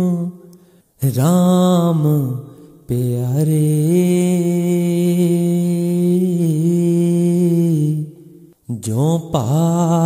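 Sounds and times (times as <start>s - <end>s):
person singing devotional chant: 0.0s - 10.0s.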